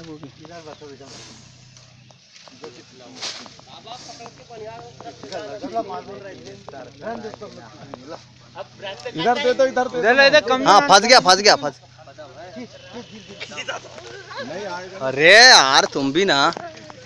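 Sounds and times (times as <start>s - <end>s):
snake hissing: 1.0s - 4.6s.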